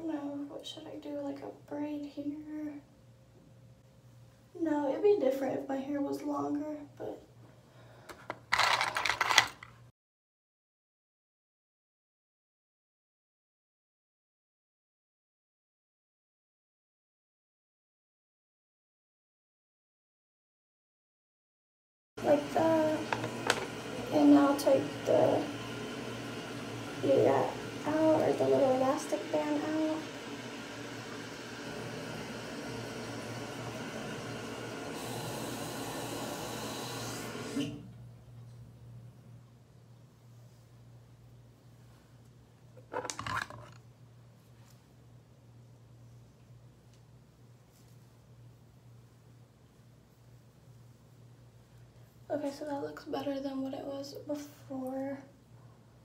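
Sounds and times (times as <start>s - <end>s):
room ventilation hum and hiss: 0.0s - 9.9s, 22.2s - 56.0s
jar lid scraping open: 42.8s - 43.8s.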